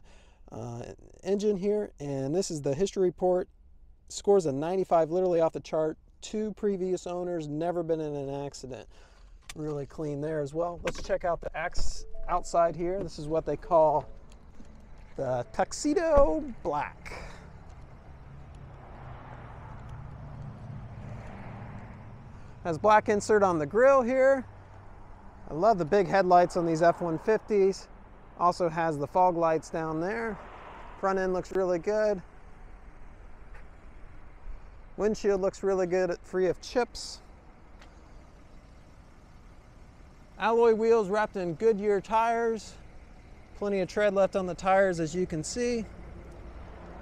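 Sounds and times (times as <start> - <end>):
low outdoor rumble: 0.0 - 47.0
faint footsteps on pavement: 12.5 - 22.1, 33.0 - 35.0, 37.2 - 38.6.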